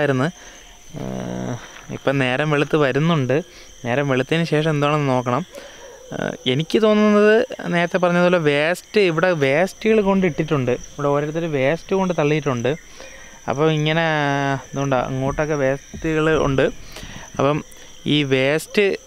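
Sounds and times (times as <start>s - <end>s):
man talking: 0.0s - 5.5s, 6.1s - 12.8s, 13.5s - 19.0s
crickets chirring: 0.0s - 19.0s.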